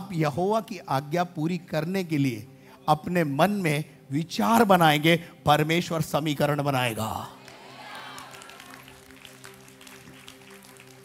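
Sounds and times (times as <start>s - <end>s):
soft held chord music: 0.0s - 11.0s.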